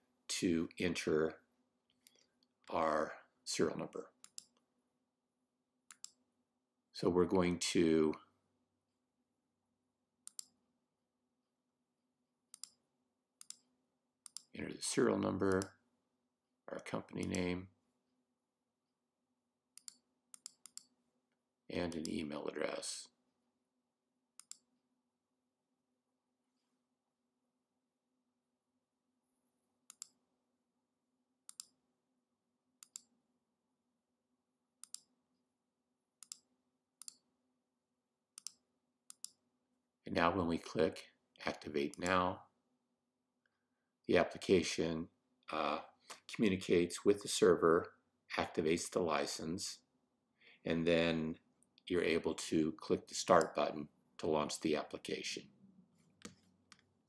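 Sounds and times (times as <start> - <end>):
computer mouse clicks: 4.2 - 4.6, 5.9 - 6.2, 10.2 - 10.6, 12.5 - 12.8, 13.4 - 14.5, 19.8 - 20.9, 24.4 - 24.7, 29.9 - 30.2, 31.5 - 31.8, 32.8 - 33.1, 34.8 - 35.1, 36.2 - 37.2, 38.4 - 39.4.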